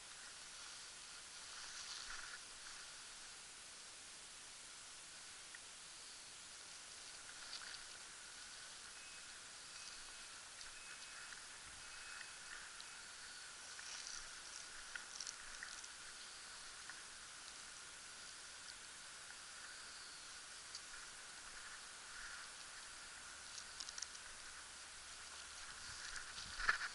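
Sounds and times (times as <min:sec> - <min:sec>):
faint steady hiss: 0:00.0 - 0:26.9
faint short high tones: 0:08.9 - 0:13.5.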